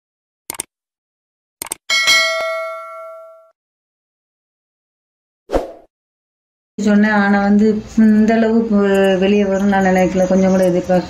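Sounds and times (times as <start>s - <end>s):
notification bell ding: 1.9s - 3.5s.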